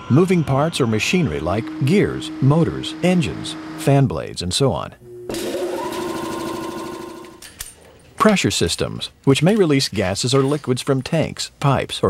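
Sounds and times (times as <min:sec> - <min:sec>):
fan motor whine: 0:00.0 - 0:07.4.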